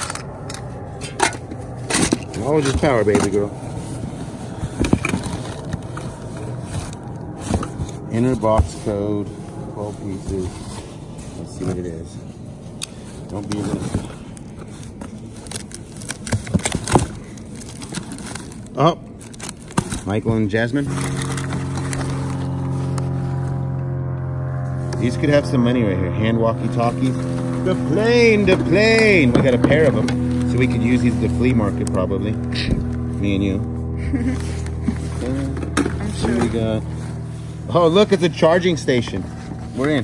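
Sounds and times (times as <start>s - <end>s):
cardboard scraping and rustling: 0.0s - 23.7s, 26.7s - 40.0s
steady low hum: 0.0s - 40.0s.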